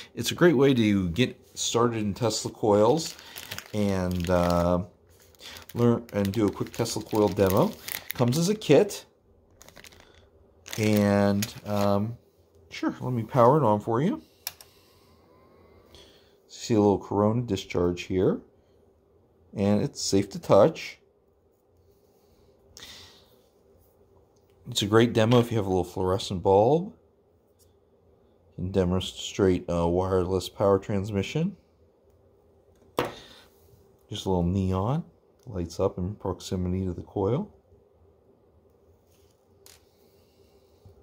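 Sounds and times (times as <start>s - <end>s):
soft hiss: 0.0s - 37.7s
faint hum: 0.0s - 41.0s.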